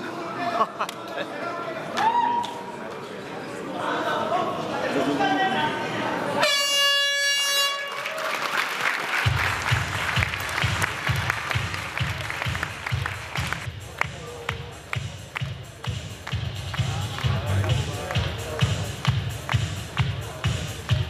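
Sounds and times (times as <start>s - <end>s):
crowd noise: 0.0s - 21.0s
arena horn: 6.4s - 8.1s
applause: 7.6s - 20.2s
arena music with heavy beat: 9.3s - 21.0s.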